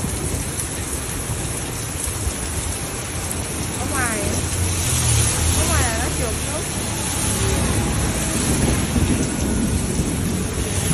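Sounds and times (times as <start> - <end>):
heavy rain pouring: 0.0 - 10.9
street traffic rumble: 0.0 - 10.9.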